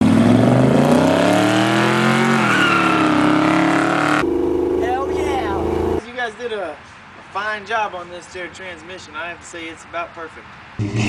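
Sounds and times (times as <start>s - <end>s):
car engine accelerating: 0.0s - 6.0s
voices talking: 4.8s - 6.1s.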